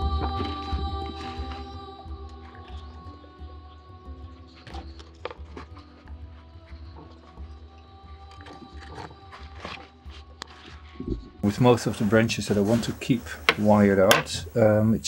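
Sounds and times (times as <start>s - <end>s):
gentle instrumental music: 0.0s - 14.4s.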